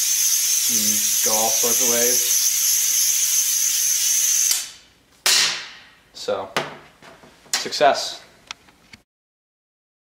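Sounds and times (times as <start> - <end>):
vacuum ejector hissing and whistling: 0.0 - 4.7.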